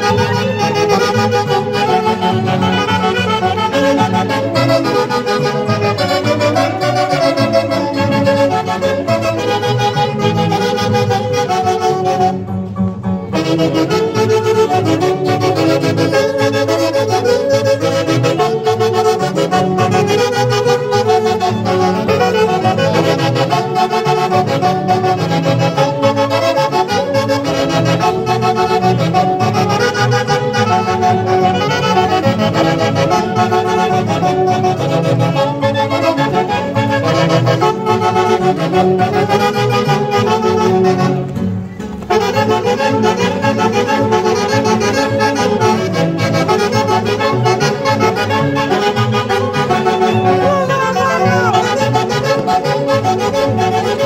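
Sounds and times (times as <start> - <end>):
bass: 0.0 - 54.0
clarinet: 0.0 - 54.0
saxophone section: 0.0 - 54.0
violin: 0.0 - 54.0.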